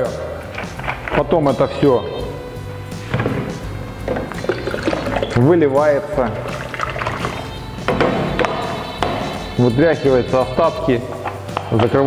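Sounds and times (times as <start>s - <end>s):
background music: 0.0s - 12.0s
alcohol pouring from plastic bottle: 4.1s - 5.4s, 6.3s - 7.6s.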